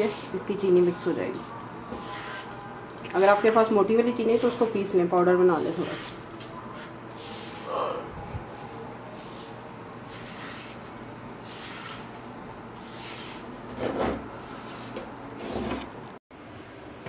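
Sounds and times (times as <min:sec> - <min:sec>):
metal spatula scraping wok: 0:00.0 - 0:07.7, 0:10.1 - 0:12.1, 0:12.8 - 0:15.8.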